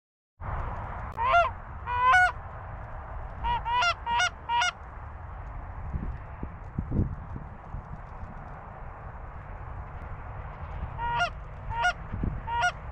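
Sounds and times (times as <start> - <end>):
wind rumble on microphone: 0.4 - 12.9
goose honking: 1.2 - 2.4, 3.4 - 4.8, 10.9 - 12.9.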